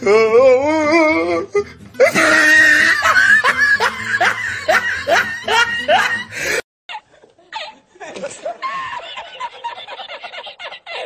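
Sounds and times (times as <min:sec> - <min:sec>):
person giggling: 0:02.0 - 0:11.0.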